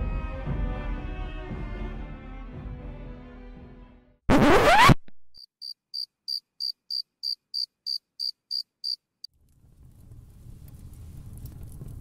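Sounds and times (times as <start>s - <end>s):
cricket chirping: 5.4s - 9.1s.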